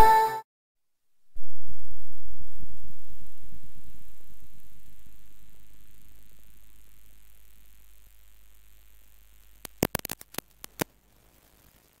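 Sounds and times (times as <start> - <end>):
sharp clicks: 9.6 - 10.9.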